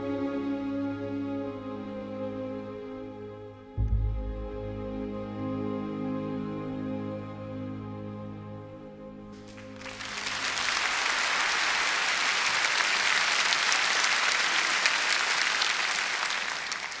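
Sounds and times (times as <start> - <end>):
soft music: 0.0 - 12.6
crowd applauding: 9.4 - 17.0.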